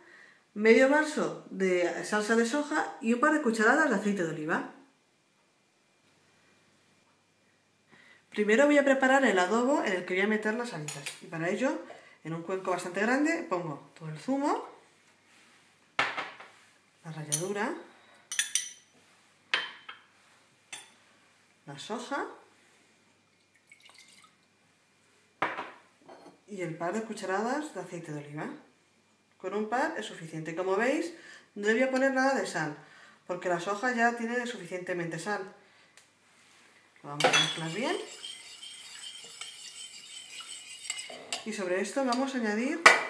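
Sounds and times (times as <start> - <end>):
ceramic dish clinking: 37.2 - 41.5
spoon stirring liquid in bowl: 37.2 - 42.4.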